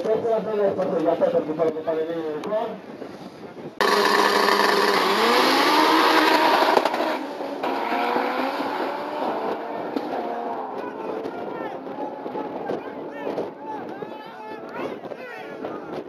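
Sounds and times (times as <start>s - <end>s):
race car engines accelerating: 3.8s - 13.9s.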